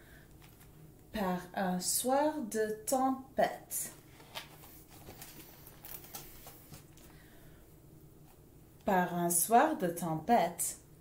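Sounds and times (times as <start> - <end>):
laminated pages turning: 4.1 - 7.1.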